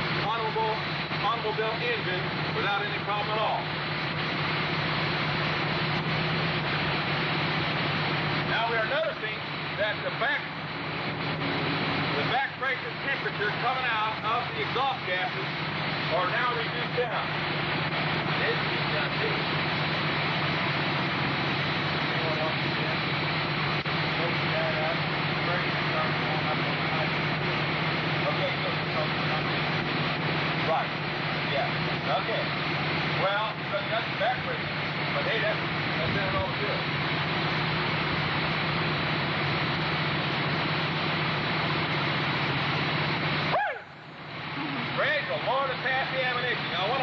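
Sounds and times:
dune buggy engine running: 0.0s - 47.0s
man talking: 0.2s - 3.7s, 8.5s - 10.6s, 12.2s - 15.5s, 18.3s - 19.5s, 33.2s - 36.9s, 44.6s - 47.0s.

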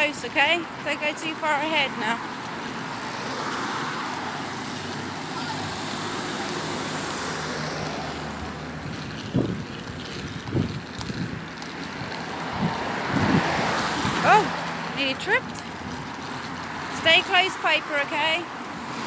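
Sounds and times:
wind on microphone: 6.9s - 14.7s.

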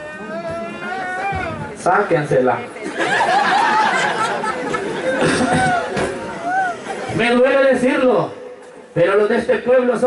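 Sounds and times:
people chattering: 0.0s - 9.9s.

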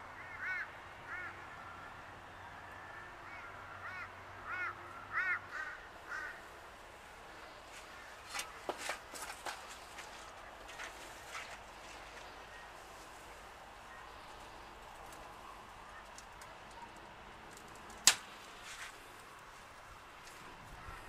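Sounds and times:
dry leaves rustling: 7.4s - 21.0s.

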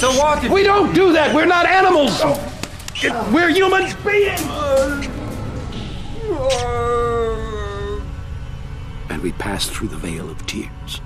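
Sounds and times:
low rumbling background: 3.9s - 11.0s
wailing cry: 4.4s - 8.3s.

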